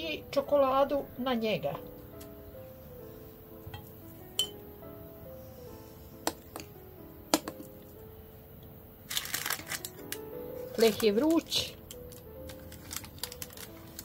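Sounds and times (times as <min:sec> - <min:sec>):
soft background music: 0:00.0 - 0:14.0
baking paper crinkling: 0:09.1 - 0:14.0.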